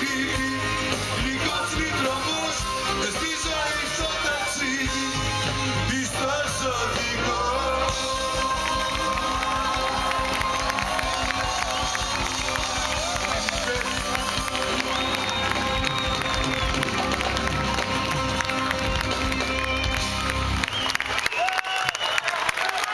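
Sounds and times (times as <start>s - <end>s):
crowd cheering and clapping: 0.0s - 22.9s
live band with electric guitar: 0.0s - 22.9s.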